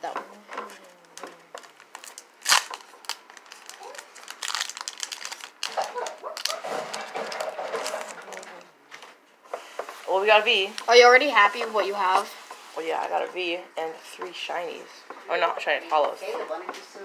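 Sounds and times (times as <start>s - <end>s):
foil wrapper tearing and crinkling: 1.6s - 8.6s.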